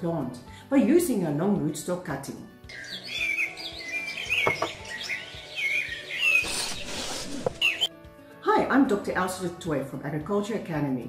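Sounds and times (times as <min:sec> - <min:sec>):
small birds chirping: 0:02.7 - 0:07.9
light knock: 0:04.4 - 0:04.8.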